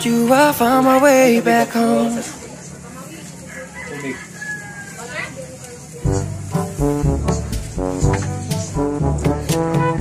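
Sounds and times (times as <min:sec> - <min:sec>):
rooster crowing: 0:03.4 - 0:05.3.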